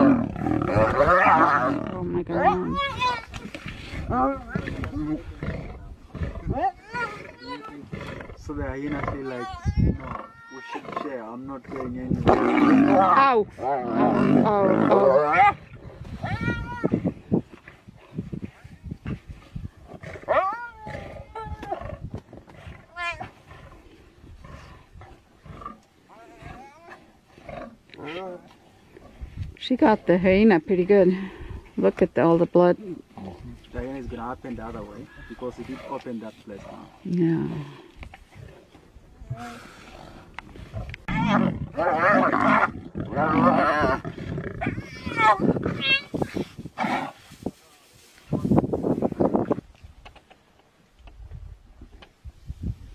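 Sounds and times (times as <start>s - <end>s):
lion growling: 0.0s - 16.3s, 19.8s - 29.3s, 35.0s - 46.2s
hyena yelping and whining: 20.3s - 21.9s, 43.3s - 46.2s.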